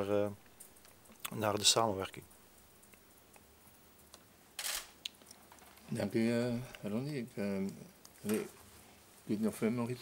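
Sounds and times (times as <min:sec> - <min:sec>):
camera shutter clicks: 0:04.6 - 0:05.0.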